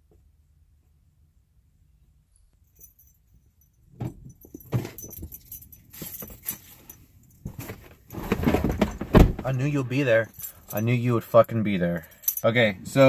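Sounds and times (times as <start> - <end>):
car keys jangling: 2.4 - 8.2, 10.2 - 13.0
knocks and rustling: 4.0 - 9.6.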